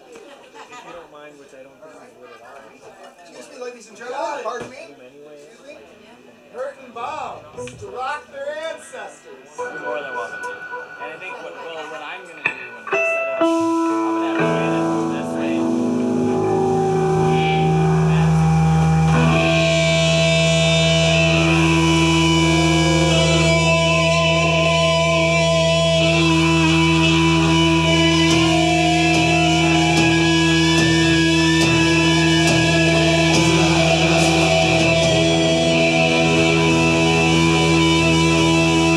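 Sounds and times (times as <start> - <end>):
distorted electric guitars: 7.5 - 8.1, 9.6 - 38.9
low drone: 9.6 - 38.9
bass: 13.6 - 38.9.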